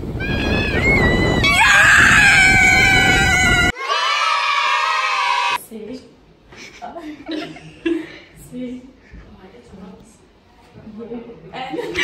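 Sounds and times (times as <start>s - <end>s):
crashing surf: 0.0s - 3.7s
wind noise on microphone: 0.0s - 3.7s
voices screaming: 0.1s - 5.6s.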